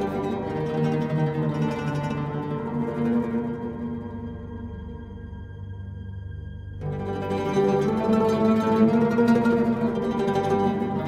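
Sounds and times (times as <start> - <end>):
plucked oud music: 0.0 - 4.6, 6.8 - 11.0.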